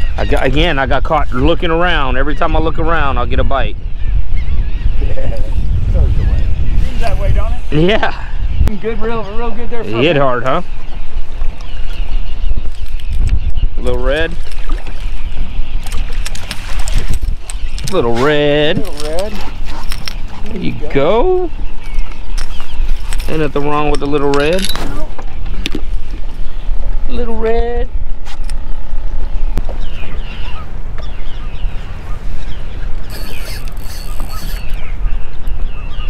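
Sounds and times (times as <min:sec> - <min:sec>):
birds calling: 0:00.0 - 0:36.0
wind rumble on microphone: 0:00.0 - 0:36.0.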